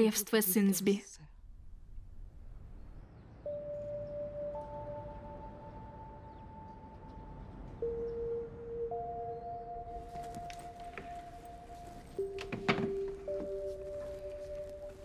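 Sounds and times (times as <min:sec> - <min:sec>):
slow music of held notes: 0:03.4 - 0:15.0.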